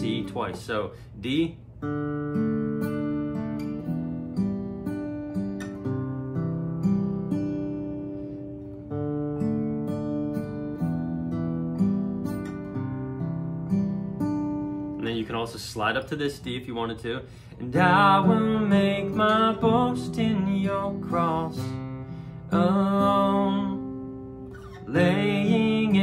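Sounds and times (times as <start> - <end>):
acoustic guitar picking chords: 0.0 - 26.0.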